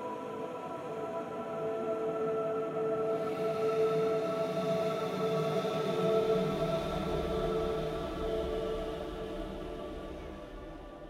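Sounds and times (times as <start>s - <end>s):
ambient music with held tones: 0.0s - 11.0s.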